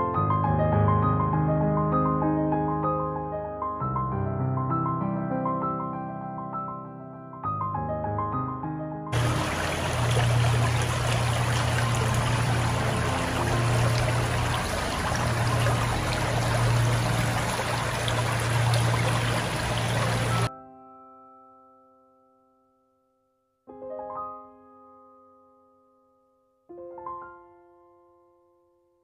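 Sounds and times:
piano music: 0:00.0 - 0:22.8, 0:23.7 - 0:28.5
stream running over stones: 0:09.2 - 0:20.5.

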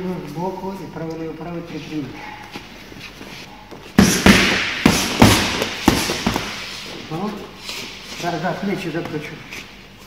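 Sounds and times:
boxing gloves smacking pads: 0:04.0 - 0:06.7.

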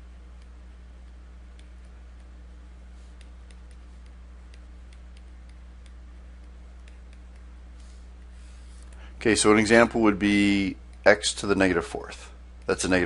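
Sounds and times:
low electrical hum: 0:00.0 - 0:13.0
stylus ticking on tablet: 0:00.3 - 0:02.5, 0:03.1 - 0:07.6.

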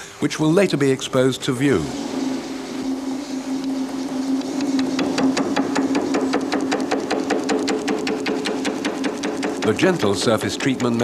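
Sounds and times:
motor hum: 0:00.0 - 0:11.0.

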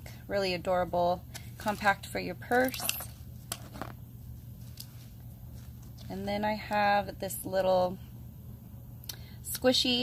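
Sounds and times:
low steady hum: 0:00.0 - 0:10.0
pouch handling clicks and rustles: 0:02.5 - 0:04.0.

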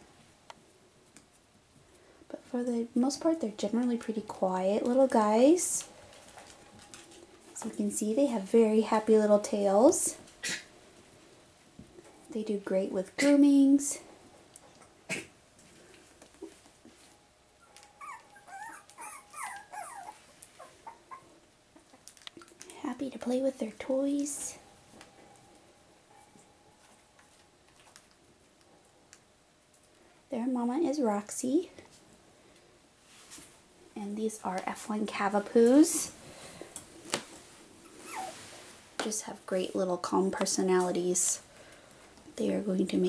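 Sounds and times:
puppy whimpering: 0:17.6 - 0:22.0, 0:37.8 - 0:38.4.

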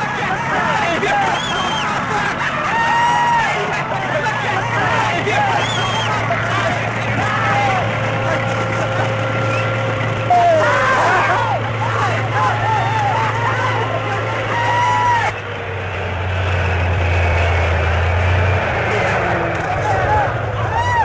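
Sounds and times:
tank engine droning: 0:00.0 - 0:21.0.

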